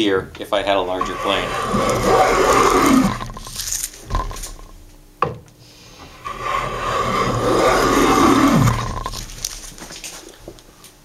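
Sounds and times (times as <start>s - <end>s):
hand plane shaving wood: 0.7s - 4.6s, 6.1s - 9.7s.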